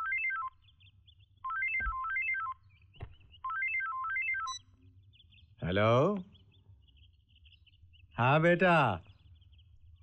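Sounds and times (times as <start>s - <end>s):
phone ringtone beeping tune: 0.0s - 0.6s, 1.4s - 2.6s, 3.4s - 4.6s.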